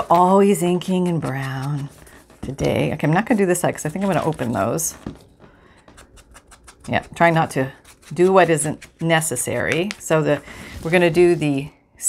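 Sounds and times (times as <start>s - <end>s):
person speaking: 0.0s - 5.1s, 6.8s - 11.7s
paper handling: 0.0s - 11.7s.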